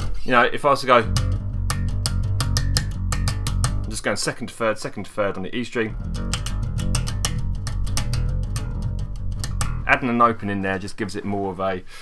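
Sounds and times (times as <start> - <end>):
electric bass guitar plucked notes: 0.9 - 4.3, 5.8 - 10.4.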